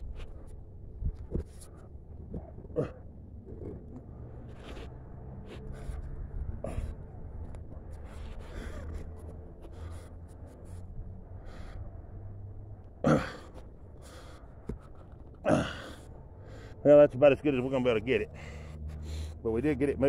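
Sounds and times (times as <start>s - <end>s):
low steady rumble: 0.0s - 20.0s
man gasping with effort: 5.6s - 7.3s, 8.0s - 10.0s, 13.0s - 14.8s, 15.4s - 16.8s.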